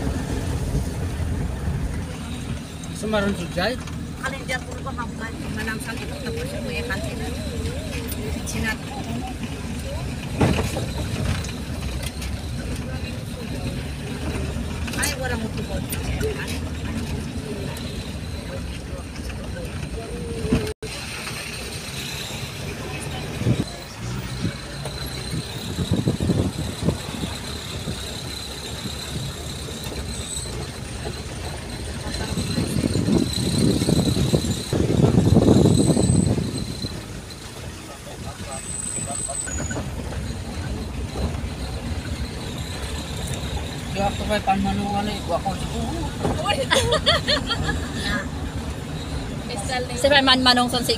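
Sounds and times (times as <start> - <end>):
vehicle engine and road noise: 0.0 - 50.9.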